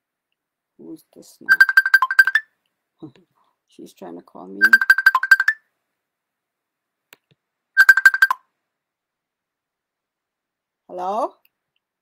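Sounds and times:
short high ringtone beeps: 1.5s - 2.4s, 4.6s - 5.6s, 7.8s - 8.4s.

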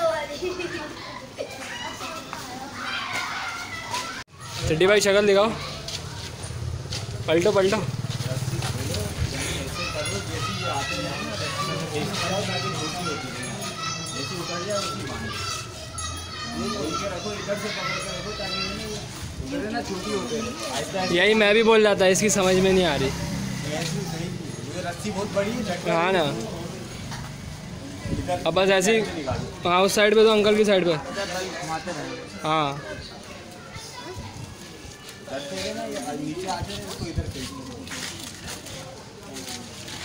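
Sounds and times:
background chatter of voices: 0.0s - 40.0s.

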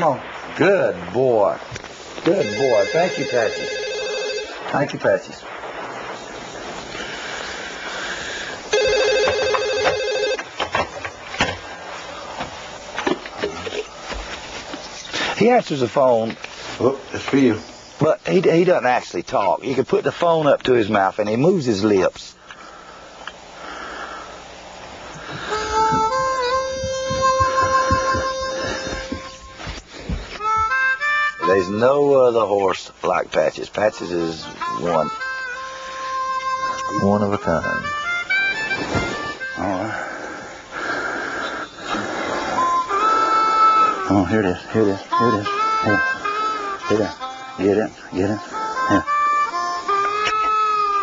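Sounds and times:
low background noise: 0.0s - 51.0s
harmonica playing slow tune: 2.3s - 4.8s, 7.1s - 10.4s, 25.2s - 32.5s, 33.8s - 51.0s
telephone ringing: 2.3s - 4.9s, 8.7s - 10.5s.

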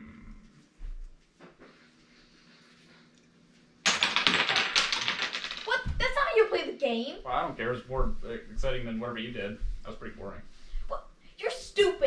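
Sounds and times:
wooden game pieces clattering: 3.9s - 6.0s.

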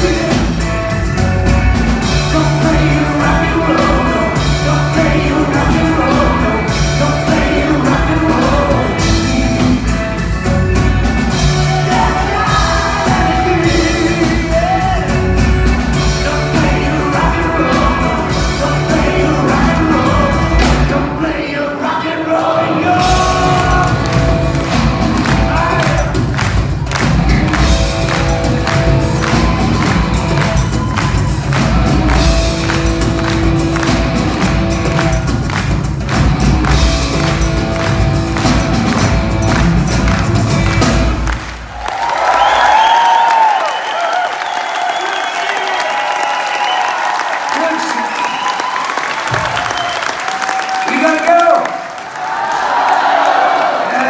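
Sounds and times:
crowd applauding and cheering: 0.0s - 21.2s, 22.4s - 54.0s
live rock band playing: 0.0s - 21.4s, 22.4s - 44.1s.

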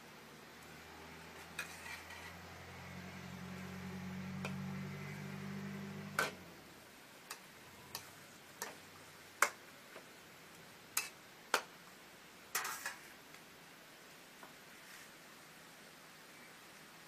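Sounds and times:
low steady hum: 0.0s - 12.5s
metal spatula clacking on wok: 7.3s - 8.8s, 9.4s - 9.6s, 11.0s - 11.7s.

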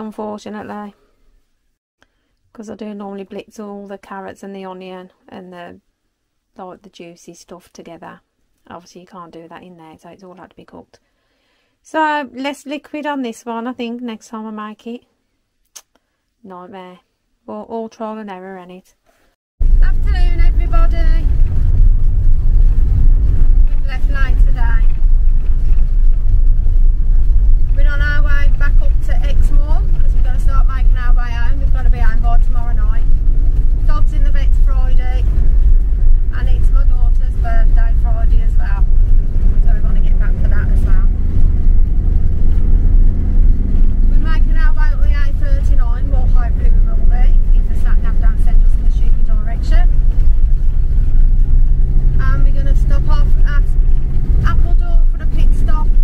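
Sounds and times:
person talking: 0.0s - 1.0s, 16.4s - 18.9s, 19.8s - 21.3s, 23.7s - 24.9s, 27.8s - 33.1s, 33.9s - 35.3s, 36.3s - 38.9s, 39.6s - 41.3s, 44.1s - 49.9s, 52.2s - 53.8s, 54.4s - 56.0s
road and engine rumble: 19.6s - 56.0s.

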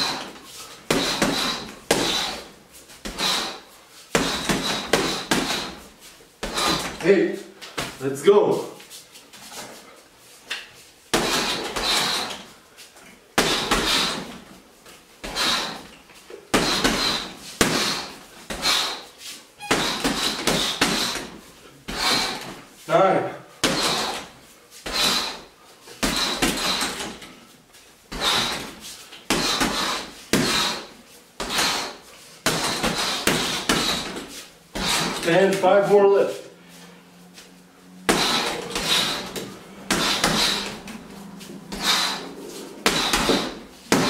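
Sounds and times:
punches hitting heavy bag: 0.0s - 7.1s, 11.1s - 12.4s, 13.4s - 14.4s, 15.2s - 15.9s, 16.5s - 19.0s, 19.6s - 22.6s, 23.6s - 27.2s, 28.1s - 35.7s, 38.1s - 41.1s, 41.7s - 44.0s
sharp hissing exhale: 23.8s - 27.1s, 38.1s - 40.9s, 41.6s - 43.8s.

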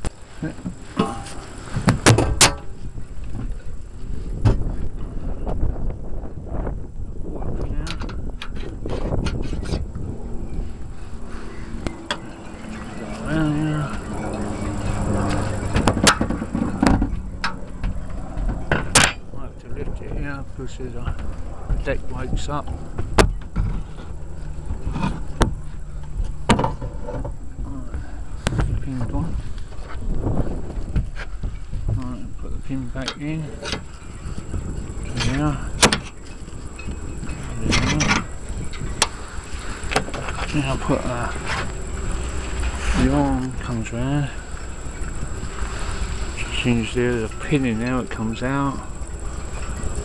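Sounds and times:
low rumble: 0.0s - 50.0s
wind buffeting microphone: 0.0s - 50.0s.

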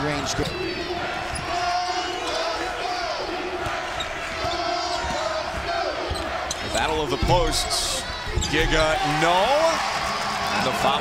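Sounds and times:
voices in arena: 0.0s - 11.0s
basketball bouncing on hardwood: 4.4s - 8.8s.

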